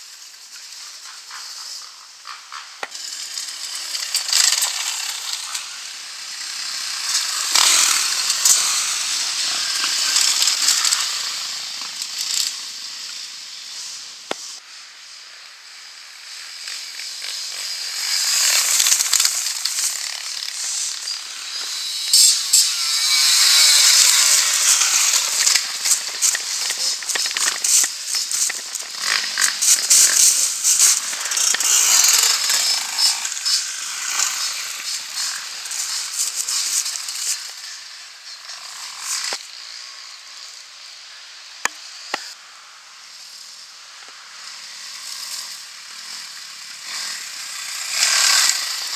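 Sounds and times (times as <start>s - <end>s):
off-road motorcycle engines revving: 0.2s - 48.9s.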